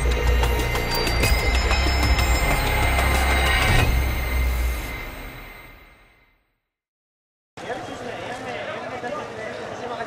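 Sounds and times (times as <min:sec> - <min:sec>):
closing music: 0:00.0 - 0:06.0.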